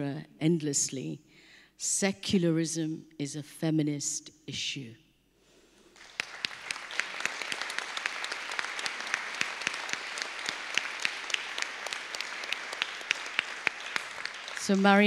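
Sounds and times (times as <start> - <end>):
audience applauding: 5.9 - 15.0.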